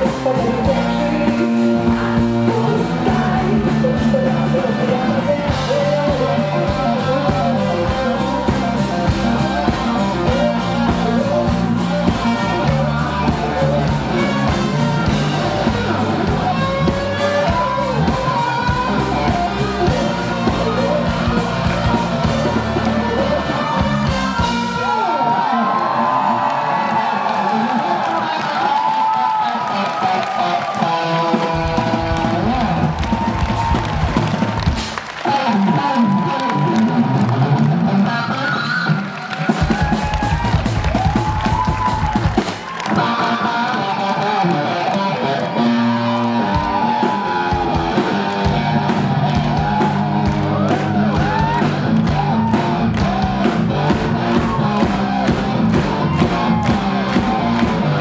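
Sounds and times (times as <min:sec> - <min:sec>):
live rock band playing: 0:00.0 - 0:58.0.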